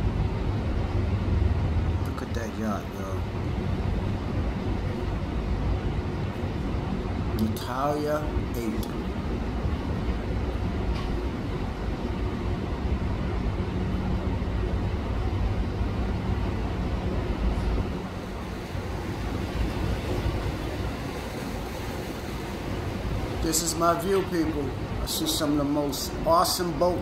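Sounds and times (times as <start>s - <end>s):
boat engines rumbling: 0.0s - 27.0s
wake rushing: 0.6s - 27.0s.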